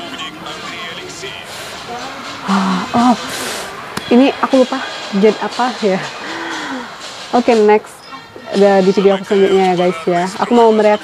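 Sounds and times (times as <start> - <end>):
background music: 0.0 - 11.0
person speaking: 0.0 - 11.0.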